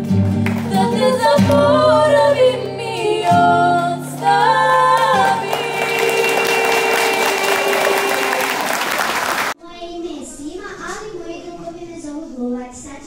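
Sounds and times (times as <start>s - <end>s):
two girls singing: 0.5s - 8.9s
audience applause: 4.7s - 9.6s.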